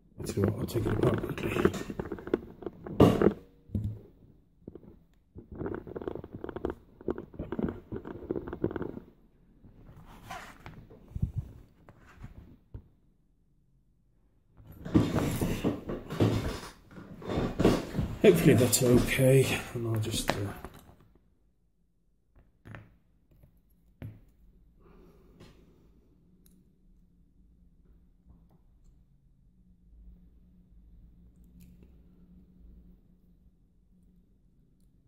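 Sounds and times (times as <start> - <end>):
clatter of objects: 0.2 - 9.1, 14.7 - 21.0
hands rubbing: 4.7 - 9.1.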